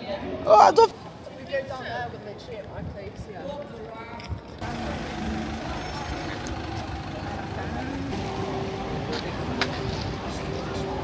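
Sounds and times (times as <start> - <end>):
traffic passing on wet street: 4.6 - 11.0.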